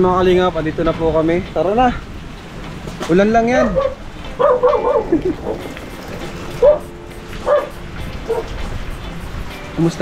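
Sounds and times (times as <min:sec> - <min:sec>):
heavy rain: 0:00.0 - 0:10.0
dog barking: 0:03.6 - 0:05.7, 0:06.6 - 0:08.6.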